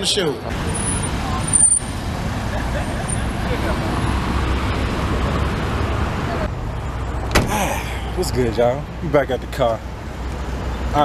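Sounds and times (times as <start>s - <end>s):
cars passing: 0.0s - 11.0s.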